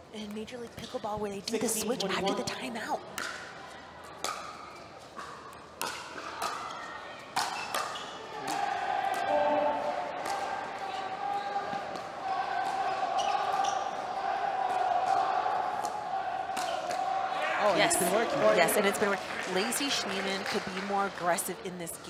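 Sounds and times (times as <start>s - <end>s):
crowd voices: 1.0s - 22.0s
paddles hitting plastic ball: 5.2s - 8.6s.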